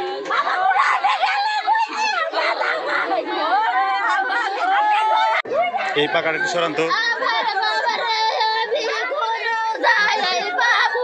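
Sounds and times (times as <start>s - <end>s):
women wailing and crying: 0.0s - 11.0s.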